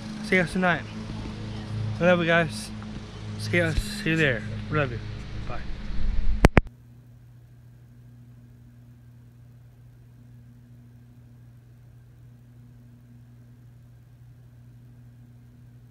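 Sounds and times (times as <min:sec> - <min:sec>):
faint low hum: 0:00.0 - 0:15.9.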